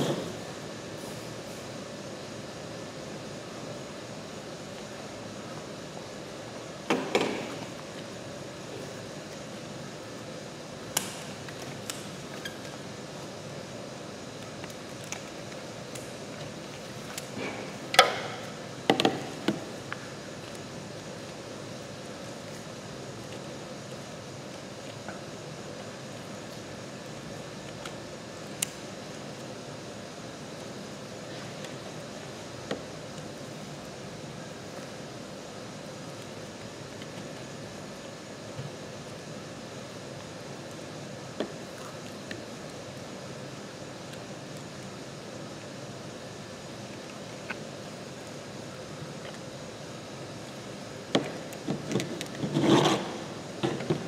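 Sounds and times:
steady background hum: 0:00.0 - 0:54.0.

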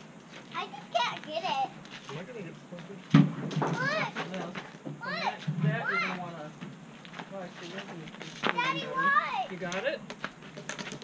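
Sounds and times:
child's high-pitched voice: 0:00.5 - 0:01.8, 0:03.7 - 0:04.2, 0:05.0 - 0:06.2, 0:08.5 - 0:09.5.

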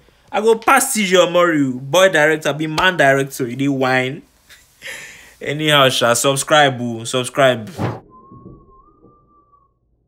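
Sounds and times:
faint whistle-like tone: 0:08.0 - 0:10.0.

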